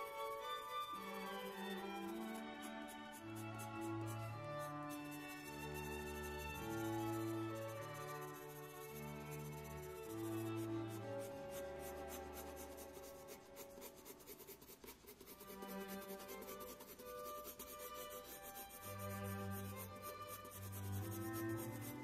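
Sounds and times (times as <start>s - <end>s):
pencil scratching on paper: 0.0s - 22.0s
soft background music: 0.0s - 22.0s.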